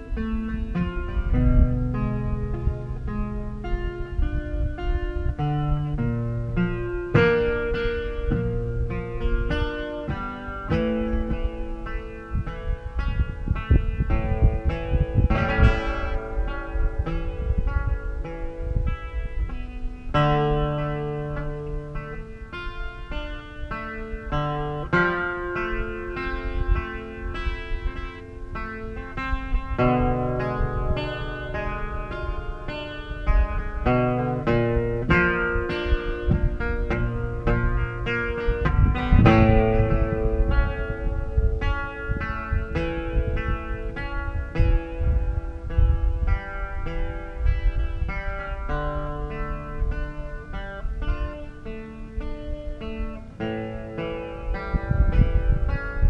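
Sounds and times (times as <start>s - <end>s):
amplified guitar playing: 0.0s - 56.0s.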